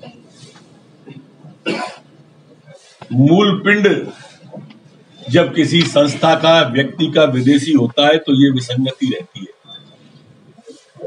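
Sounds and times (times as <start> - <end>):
person coughing: 1.1 - 2.1.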